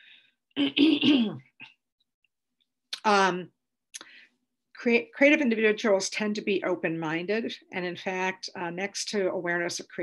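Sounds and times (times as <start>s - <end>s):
woman clearing her throat: 0.6s - 1.6s.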